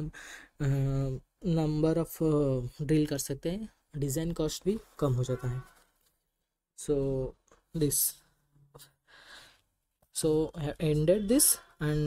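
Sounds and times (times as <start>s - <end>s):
person speaking: 0.0s - 5.9s, 6.8s - 9.0s, 10.0s - 12.0s.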